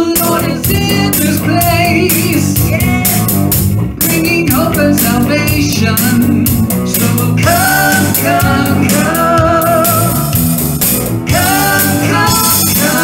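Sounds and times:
acoustic guitar: 0:00.0 - 0:13.0
drums: 0:00.0 - 0:13.0
electric bass: 0:00.0 - 0:13.0
women singing: 0:07.0 - 0:10.4, 0:11.3 - 0:13.0.

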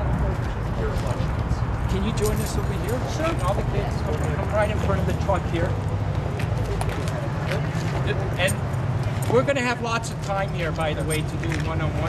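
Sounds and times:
crowd voices outdoors: 0:00.0 - 0:12.0.

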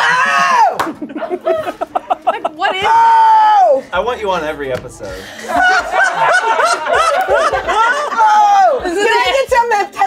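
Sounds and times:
people laughing: 0:00.0 - 0:03.3, 0:05.2 - 0:09.5.

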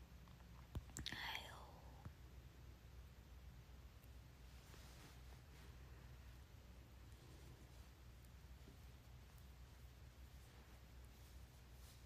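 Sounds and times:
woman whispering: 0:01.0 - 0:02.1.

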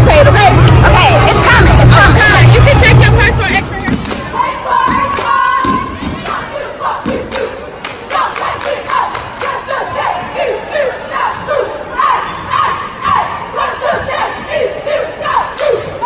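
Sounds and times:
rhythmic hand claps: 0:03.9 - 0:09.6.

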